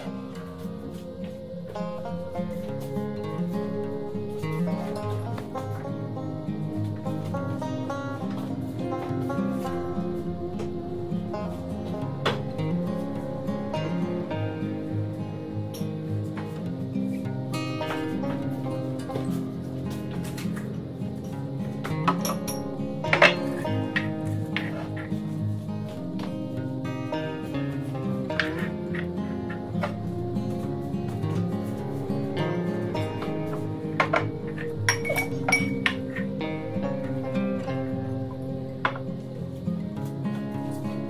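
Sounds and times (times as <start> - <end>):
acoustic guitar music: 0.0 - 41.0.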